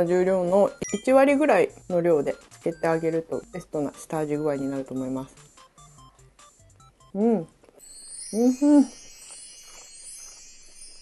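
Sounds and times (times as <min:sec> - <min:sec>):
sparkle chime shimmer: 0:07.8 - 0:11.0.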